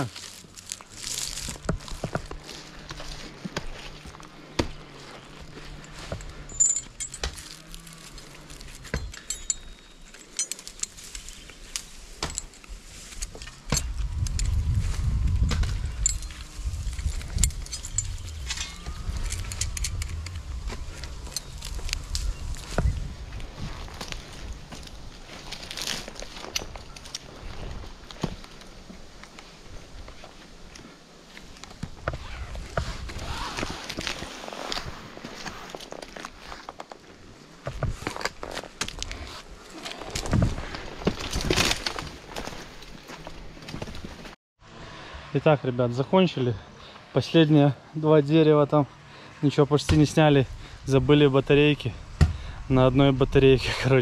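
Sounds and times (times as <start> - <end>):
metal hardware clinking: 5.8 - 14.5, 15.8 - 20.4
low rumble: 13.8 - 25.2.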